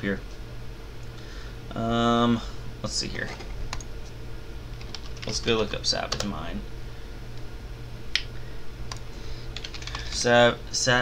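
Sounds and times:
typing on computer keyboard: 0:04.8 - 0:05.4, 0:09.6 - 0:10.2.

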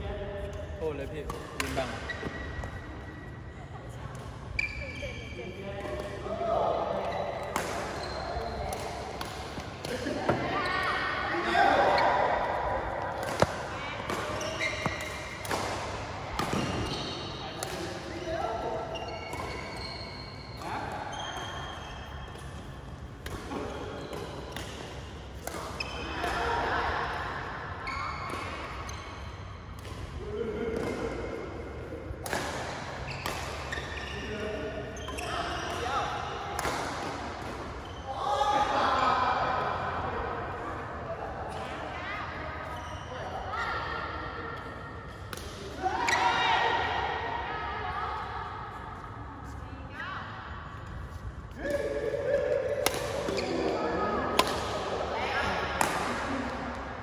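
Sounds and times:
shoes squeaking on court: 0:01.7 - 0:03.6, 0:04.2 - 0:06.1, 0:07.0 - 0:11.0, 0:13.2 - 0:26.2, 0:33.0 - 0:35.8
rackets striking shuttlecock: 0:13.1 - 0:18.1, 0:51.6 - 0:54.9.

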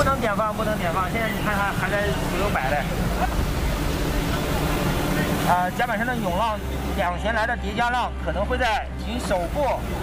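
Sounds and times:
sea wash: 0:00.0 - 0:07.3
ship machinery rumbling: 0:00.0 - 0:08.2
wind: 0:00.0 - 0:10.0.

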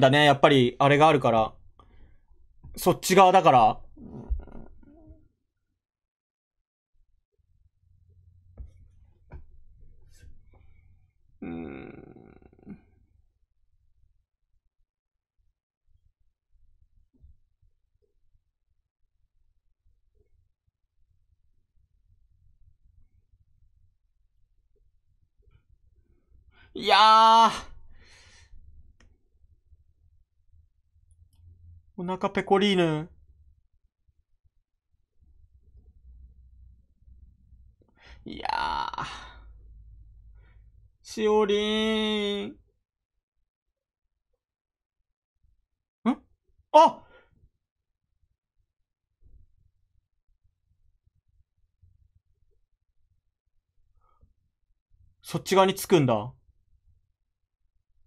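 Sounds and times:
man sighing: 0:11.4 - 0:12.9, 0:38.0 - 0:39.5
faint breath: 0:27.9 - 0:28.7.

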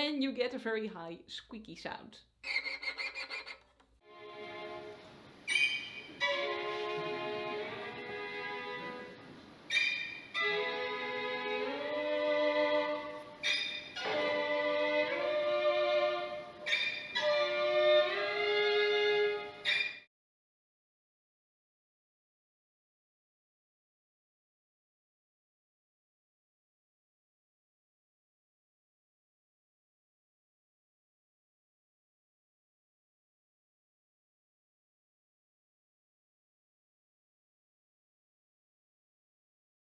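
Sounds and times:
string orchestra playing: 0:04.0 - 0:05.1, 0:06.2 - 0:09.2, 0:10.3 - 0:19.7.

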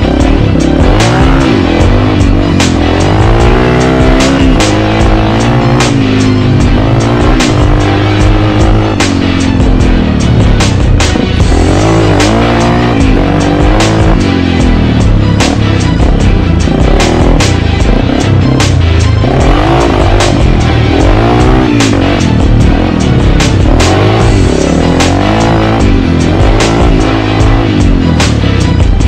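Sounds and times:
dirt bike engine revving: 0:00.0 - 0:29.0
music with steady beat: 0:00.0 - 0:29.0.

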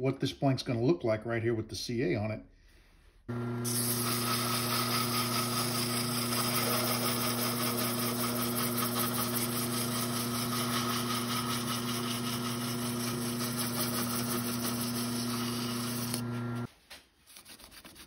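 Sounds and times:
wood lathe motor hum: 0:03.3 - 0:16.7
sanding rub: 0:03.8 - 0:16.2, 0:17.2 - 0:18.0.

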